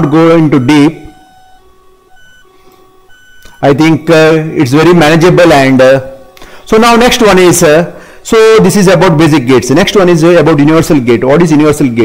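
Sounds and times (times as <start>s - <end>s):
faint electronic tones: 0.0s - 12.0s.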